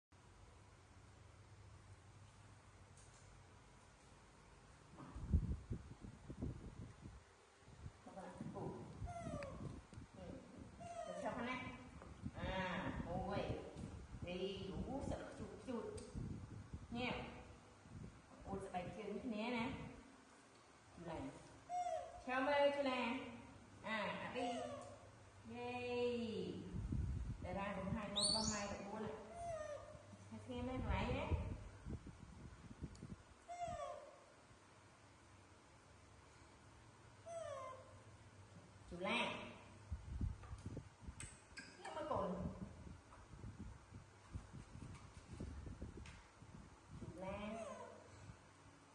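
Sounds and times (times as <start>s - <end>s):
woman talking: 8.0s - 9.0s, 10.2s - 16.0s, 16.9s - 17.5s, 18.4s - 20.0s, 21.0s - 21.5s, 22.3s - 24.8s, 25.4s - 26.8s, 27.4s - 29.4s, 30.3s - 31.6s, 38.9s - 39.6s, 41.8s - 42.7s, 47.0s - 48.0s
baby monkey high call: 9.0s - 9.6s, 10.8s - 11.4s, 21.6s - 22.3s, 24.4s - 25.1s, 28.1s - 30.1s, 33.5s - 34.3s, 37.2s - 38.0s
macaques squealing: 21.7s - 22.2s.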